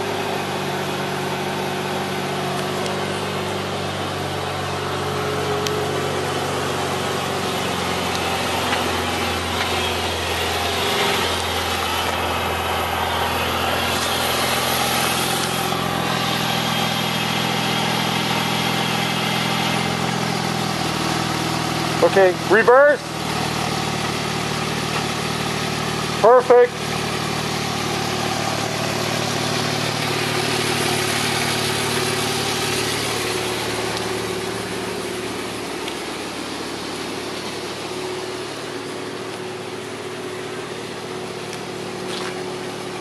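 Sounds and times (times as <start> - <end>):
car engine idling: 0.0 - 43.0.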